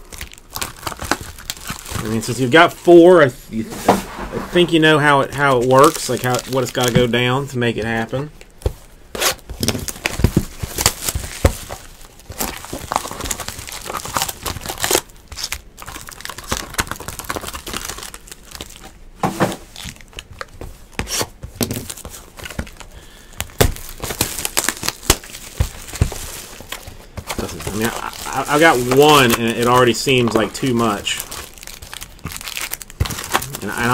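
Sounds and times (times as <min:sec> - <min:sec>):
plastic shrink wrap crinkling and tearing: 0:00.0 - 0:03.2, 0:04.6 - 0:08.4, 0:09.2 - 0:19.0, 0:19.6 - 0:33.9.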